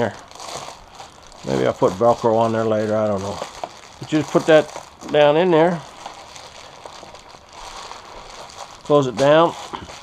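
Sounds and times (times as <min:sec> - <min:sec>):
foil insulation crinkling: 0:00.0 - 0:10.0.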